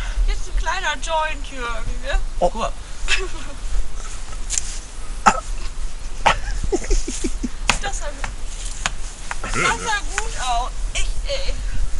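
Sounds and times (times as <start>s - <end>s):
steady low rumble: 0.0s - 11.9s.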